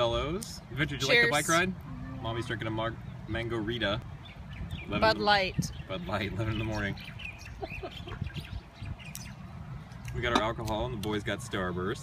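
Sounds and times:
bird chirps: 2.8 - 10.2.

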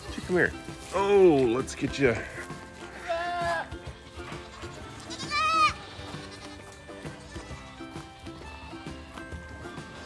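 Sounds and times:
soft background music: 0.0 - 10.0
goat kid bleating: 2.9 - 9.3.

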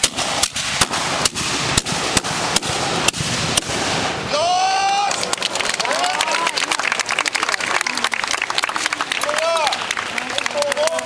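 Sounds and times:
gunshot cracks: 0.0 - 4.2.

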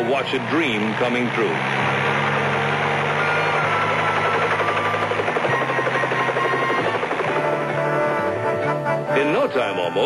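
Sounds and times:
rotor blades chopping: 0.0 - 8.6
helicopter engine hum: 0.0 - 9.5.

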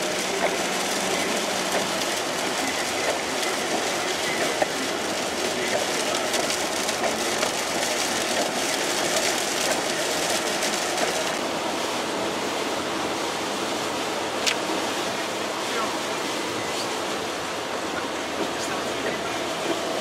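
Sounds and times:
vehicle running noise: 0.0 - 20.0.

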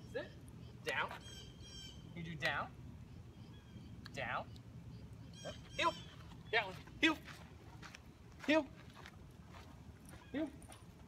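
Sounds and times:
footsteps on sandy dirt: 5.6 - 11.0
man speaking a command: 5.8 - 7.4, 8.4 - 8.8.

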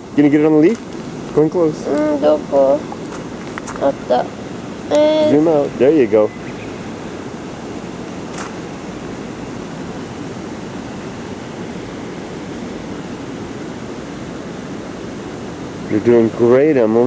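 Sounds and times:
steady rushing noise: 0.0 - 17.0.

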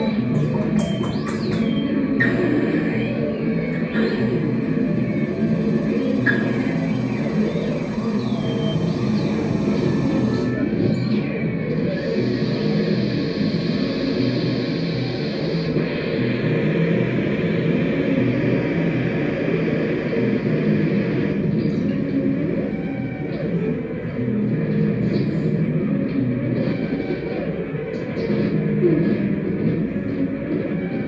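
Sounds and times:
scattered clicks and crackles: 0.0 - 8.2
electronic drone music: 0.0 - 31.0.

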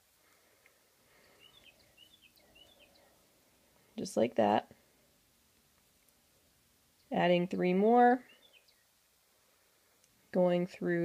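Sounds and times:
faint quick bird chirps: 1.3 - 3.0.

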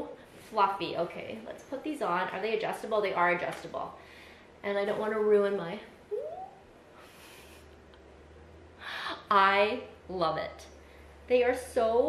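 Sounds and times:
woman humming rising pitch: 6.1 - 6.6.

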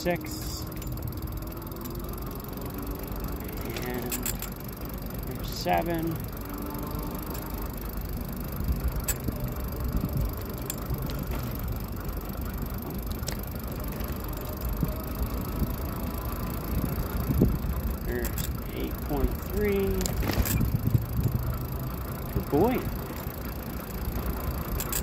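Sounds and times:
fat tyres rumbling: 0.0 - 25.0.

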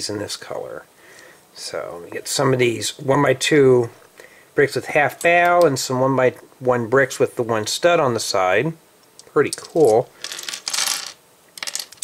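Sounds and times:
plastic bricks clattering on table: 9.6 - 12.0.

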